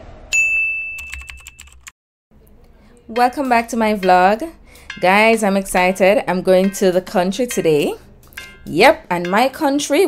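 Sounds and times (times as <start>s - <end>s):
bright ding: 0.3s - 1.2s.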